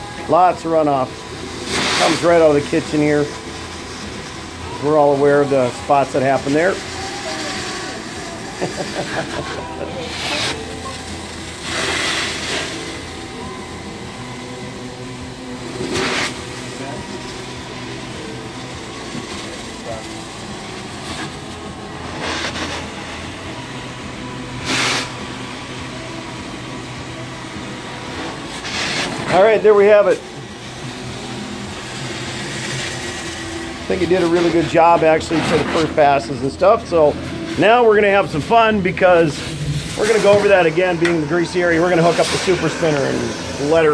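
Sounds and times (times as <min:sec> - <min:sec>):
extraction wand vacuum hiss: 0:00.2 - 0:43.9.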